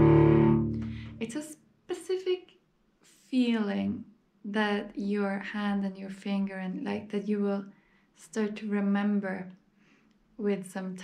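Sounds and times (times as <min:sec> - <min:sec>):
cello double stop: 0:00.0 - 0:01.2.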